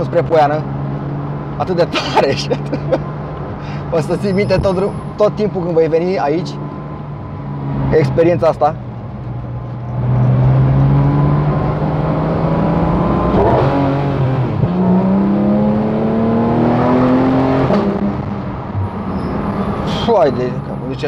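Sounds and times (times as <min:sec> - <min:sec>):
car engine accelerating: 0:06.7 - 0:21.0.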